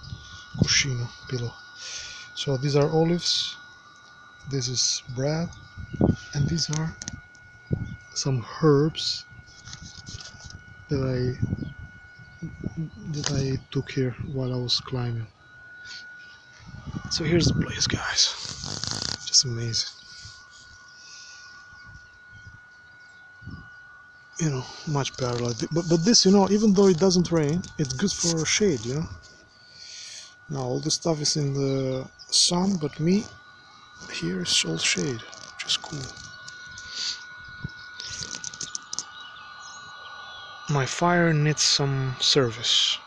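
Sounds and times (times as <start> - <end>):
distant bird chirps: 0.0 - 8.5, 9.2 - 41.8
thin high-pitched whine: 0.0 - 43.0
low wind rumble: 4.5 - 8.5, 10.5 - 15.4, 16.6 - 20.9
burning wood crackling: 15.8 - 21.5, 24.3 - 39.9.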